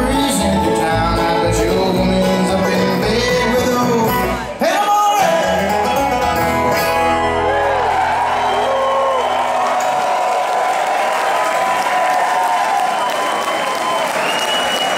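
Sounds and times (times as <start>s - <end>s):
low bass notes: 0.0s - 4.6s, 5.3s - 9.5s
crowd applauding and cheering: 6.7s - 14.9s.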